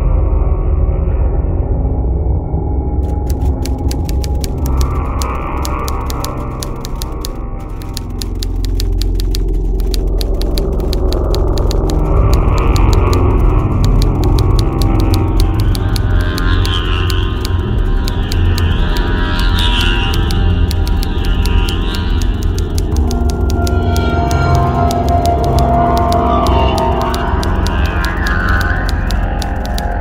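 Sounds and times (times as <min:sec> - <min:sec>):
dark droning horror score: 0:03.0 - 0:30.0
typewriter-like key clicks: 0:03.0 - 0:30.0.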